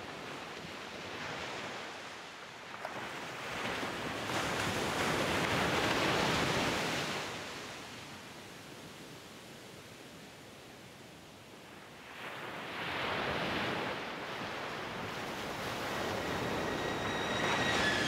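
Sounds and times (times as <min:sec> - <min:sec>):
rushing surf-like noise: 0:14.1 - 0:18.0.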